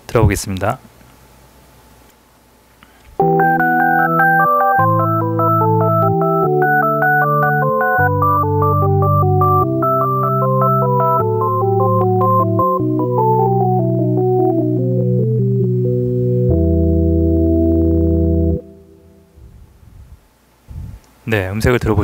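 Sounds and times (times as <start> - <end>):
synthesizer organ music: 3.2 - 19.3.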